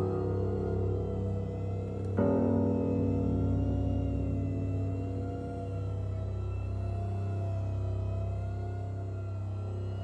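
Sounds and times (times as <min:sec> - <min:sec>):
eerie ambient music: 0:00.0 - 0:10.0.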